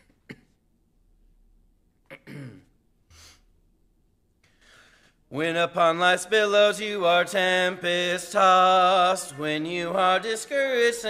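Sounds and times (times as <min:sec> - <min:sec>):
man clearing his throat: 0:00.0 - 0:00.6, 0:02.1 - 0:02.8.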